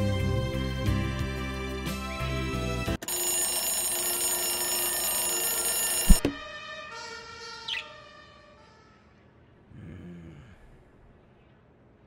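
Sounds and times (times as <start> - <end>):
music: 0.0 - 3.0
ringing tones: 3.0 - 6.4
loud alarm-like ringing: 3.0 - 6.6.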